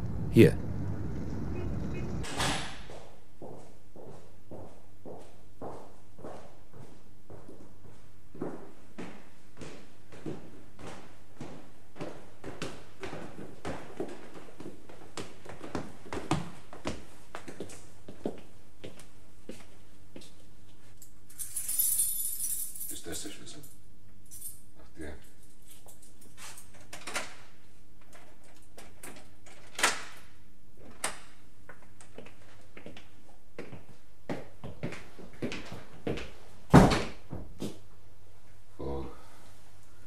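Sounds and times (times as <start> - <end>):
keys jangling: 21.3 - 24.6, 25.2 - 26.7.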